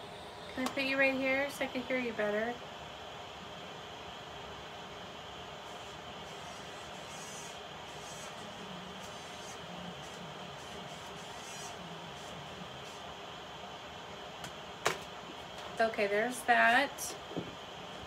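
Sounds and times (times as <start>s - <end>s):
steady background hiss: 0.0s - 18.0s.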